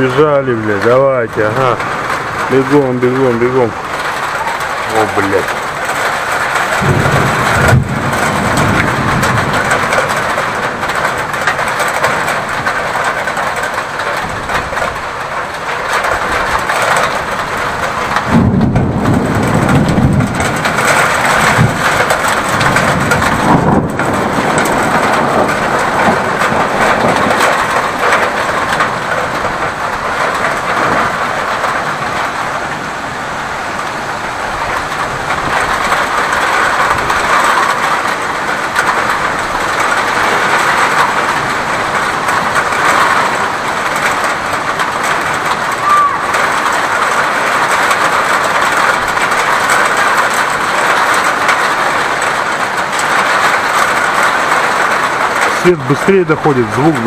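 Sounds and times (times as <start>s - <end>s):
low rumble of thunder: 0.0s - 32.8s, 33.8s - 57.0s
heavy rain hissing: 0.0s - 57.0s.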